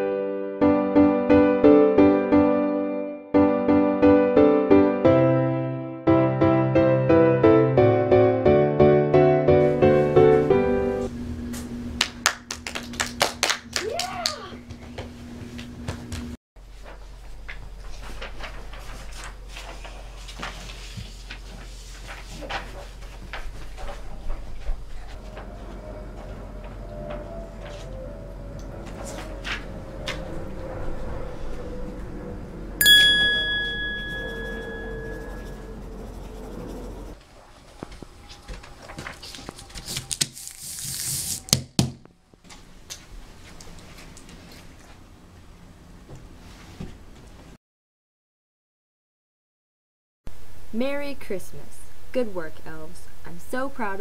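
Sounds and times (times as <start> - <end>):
group clapping hands: 12.0 - 14.6
paper rustling: 16.7 - 24.8, 38.4 - 41.7
bell-like chime: 32.8 - 35.7.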